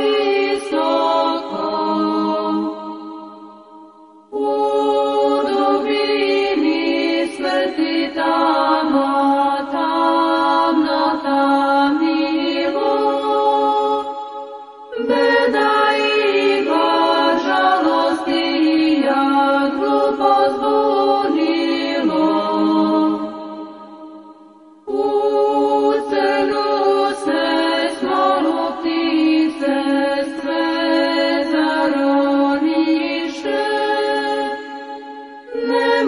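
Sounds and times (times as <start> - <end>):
choir chanting a cappella: 0.0 - 36.0.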